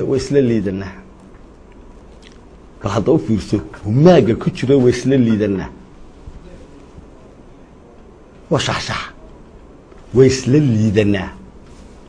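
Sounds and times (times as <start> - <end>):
man speaking: 0.0 - 1.2, 2.8 - 9.5, 10.1 - 11.6
background hiss: 0.0 - 12.0.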